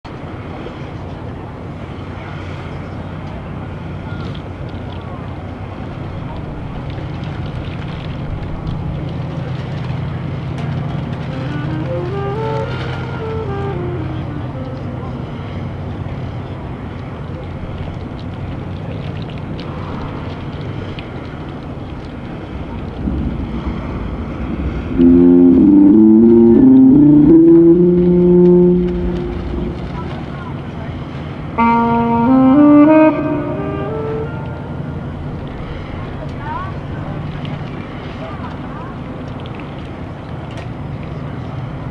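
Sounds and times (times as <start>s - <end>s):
wind rumble on microphone: 0.0s - 41.9s
marching band instruments warming up: 10.1s - 16.0s, 22.4s - 38.6s.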